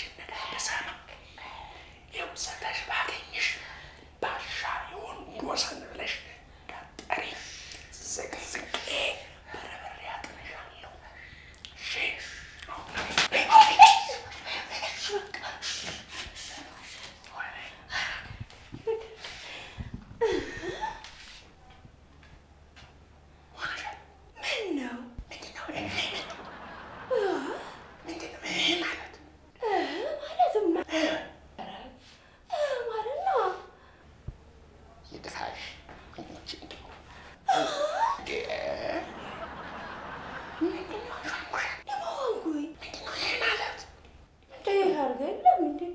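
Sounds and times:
person whispering: 0:04.2 - 0:11.2, 0:14.2 - 0:18.2, 0:25.3 - 0:26.4.

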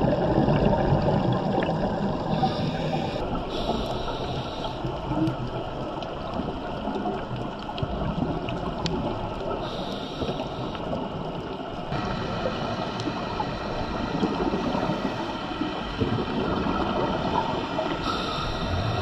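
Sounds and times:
underwater water rushing: 0:00.0 - 0:19.0.

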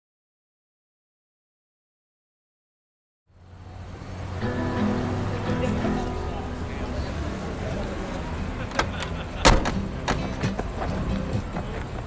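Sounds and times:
traffic rumble: 0:03.3 - 0:12.0.

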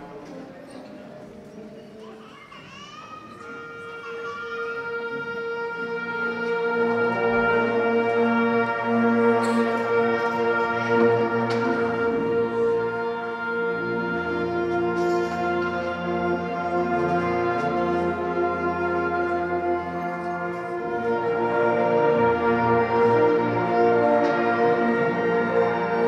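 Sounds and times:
concert band sustained notes: 0:03.2 - 0:26.0.

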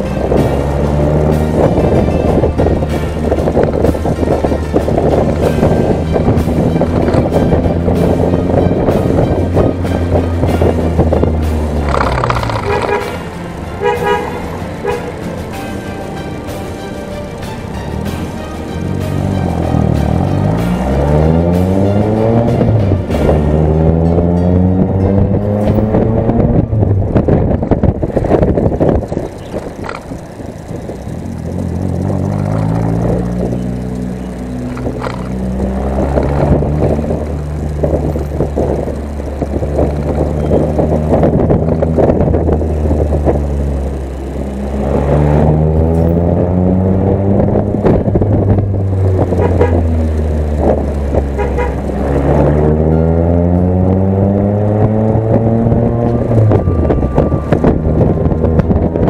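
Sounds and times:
vehicle engine revving: 0:00.0 - 0:59.0.

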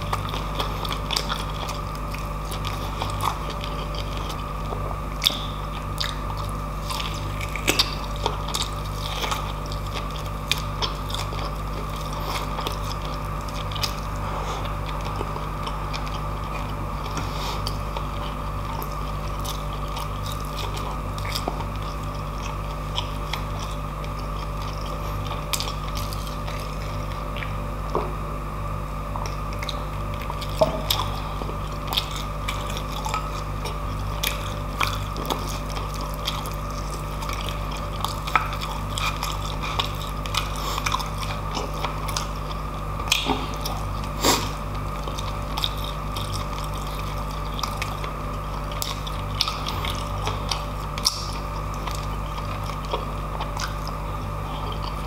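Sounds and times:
close chewing with crunches: 0:00.0 - 0:55.0
steady low hum: 0:00.0 - 0:55.0.

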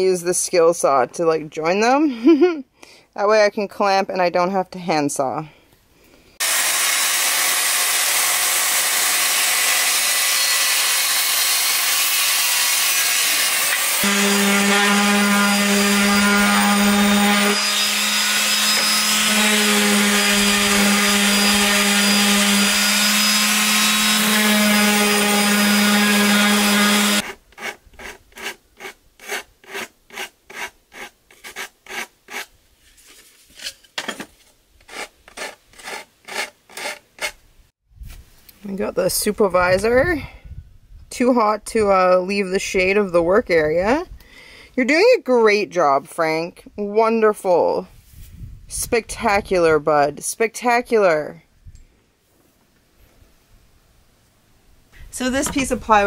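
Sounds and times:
orbital sander humming on wood: 0:06.4 - 0:27.3
hand sanding with sandpaper: 0:25.5 - 0:33.2, 0:34.9 - 0:37.4.

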